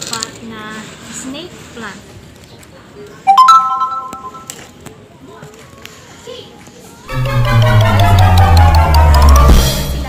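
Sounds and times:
electronic chime: 0:03.3 - 0:04.5.

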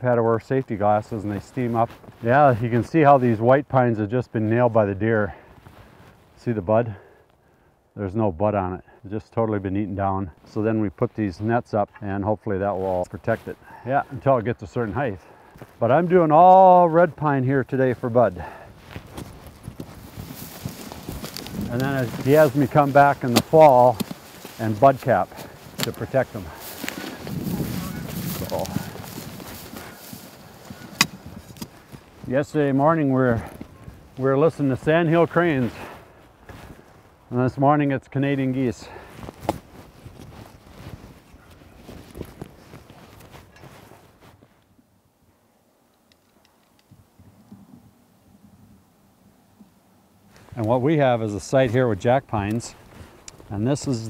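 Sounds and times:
faint outdoor hush: 0:00.0 - 0:39.3
footsteps crunching in grass: 0:00.2 - 0:06.7, 0:09.8 - 0:44.9, 0:50.2 - 0:54.0
canvas bags rustling: 0:17.9 - 0:36.8, 0:38.8 - 0:44.6
shovel scraping through dry grass: 0:18.0 - 0:32.3.

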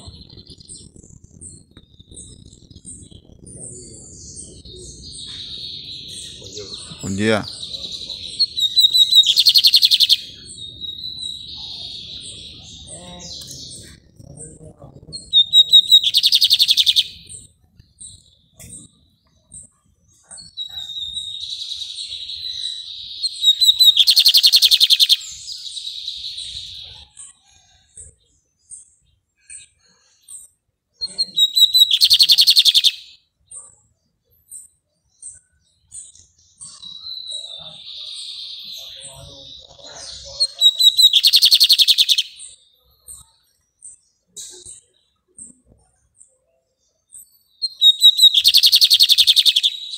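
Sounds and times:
bird twittering song: 0:00.0 - 0:49.9.

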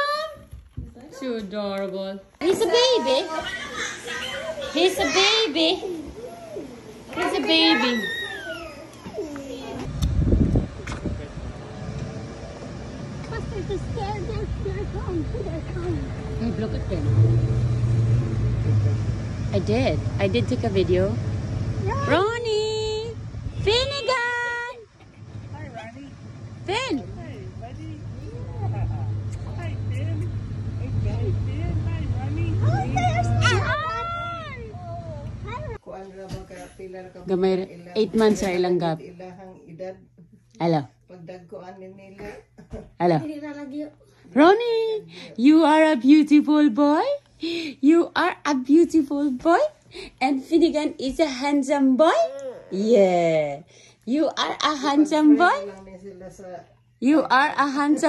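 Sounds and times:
child squealing: 0:07.7 - 0:09.8, 0:32.7 - 0:34.9.

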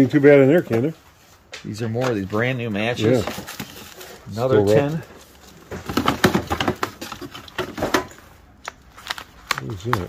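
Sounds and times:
rummaging in plastic drawer: 0:02.0 - 0:08.3.

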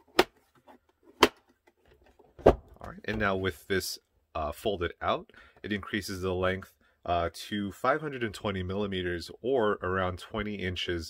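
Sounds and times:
faint handling noise: 0:00.0 - 0:03.6.

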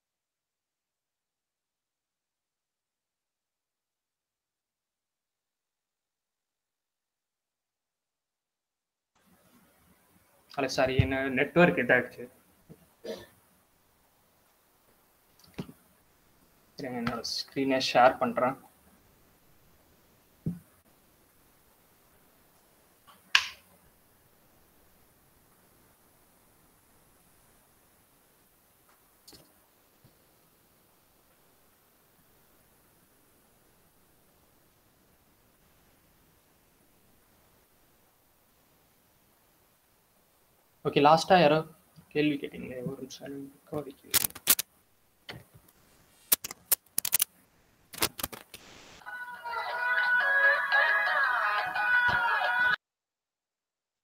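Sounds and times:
faint background hiss: 0:09.2 - 0:52.6
sharp click: 0:44.1 - 0:44.7, 0:46.3 - 0:47.3.

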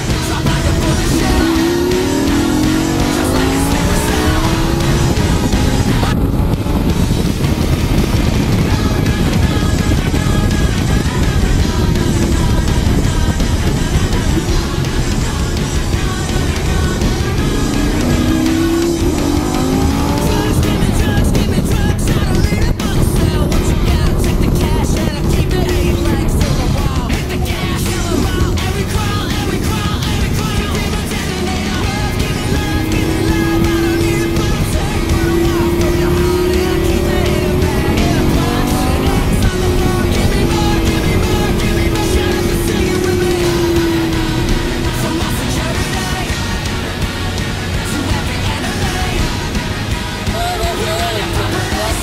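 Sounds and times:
car engine revving: 0:00.0 - 0:52.0
music: 0:00.0 - 0:52.0.

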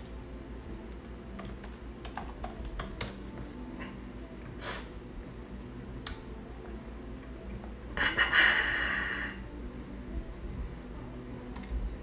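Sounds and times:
faint room noise: 0:00.0 - 0:12.0
sharp click: 0:06.0 - 0:06.3.

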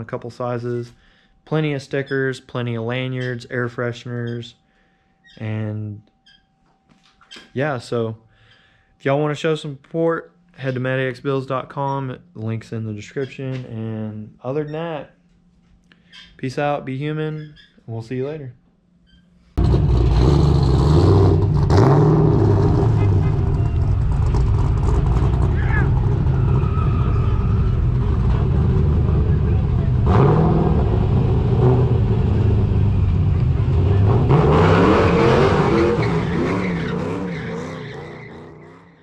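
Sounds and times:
car engine revving: 0:19.6 - 0:39.0.

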